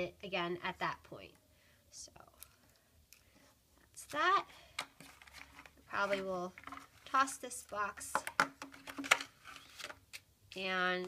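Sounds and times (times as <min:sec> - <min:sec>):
paper and cellophane rustling: 0:05.0 - 0:07.4
plastic box clicks and knocks: 0:08.1 - 0:10.0.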